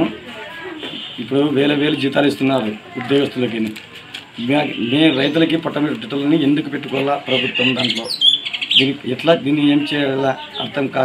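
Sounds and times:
bird chirping: 0:04.5 - 0:10.9.

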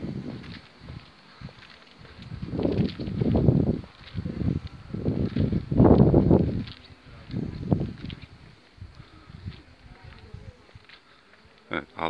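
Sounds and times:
soft footsteps thuds: 0:00.0 - 0:11.6.

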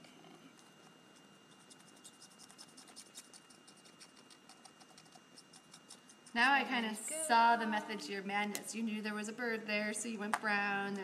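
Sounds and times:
marker scratching on rubber: 0:01.1 - 0:06.5.

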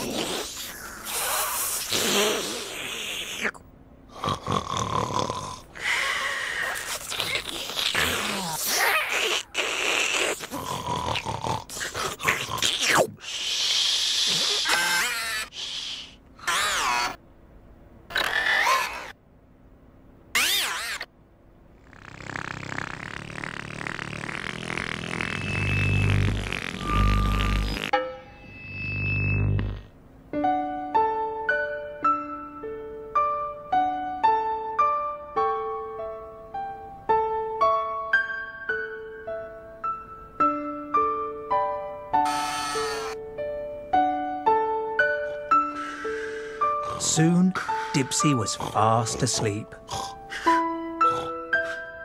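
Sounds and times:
snoring and grunting: 0:04.1 - 0:05.8, 0:09.9 - 0:13.0, 0:21.9 - 0:27.9, 0:46.8 - 0:51.8.

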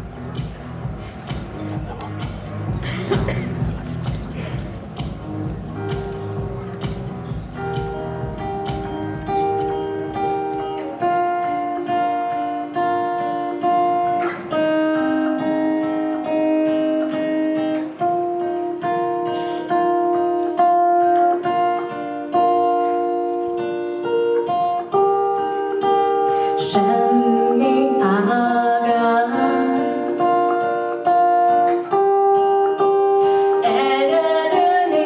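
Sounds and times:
fingerpicked acoustic guitar: 0:00.0 - 0:35.0.

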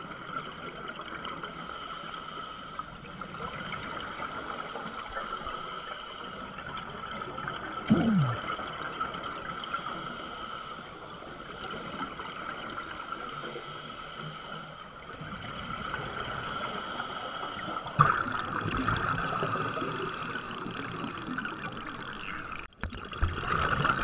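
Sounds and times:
scuba divers breathing: 0:01.4 - 0:03.0, 0:04.2 - 0:06.7, 0:09.5 - 0:15.1, 0:16.4 - 0:18.0, 0:19.0 - 0:21.6
bubbles gurgling: 0:07.7 - 0:09.0.

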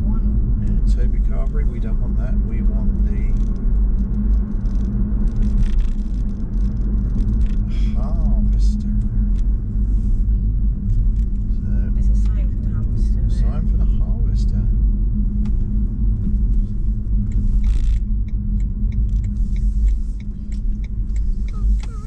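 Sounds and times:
road and tyre rumble in car: 0:00.0 - 0:22.0
quick evenly spaced ticks: 0:17.2 - 0:22.0.

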